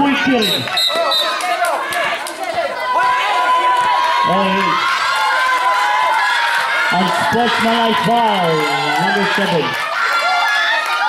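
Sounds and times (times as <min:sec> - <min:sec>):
spectators chattering and calling out: 0:00.0 - 0:11.0.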